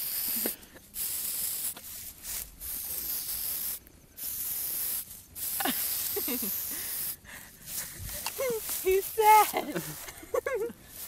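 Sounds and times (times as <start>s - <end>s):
aerosol spray hissing: 0.0s - 11.0s.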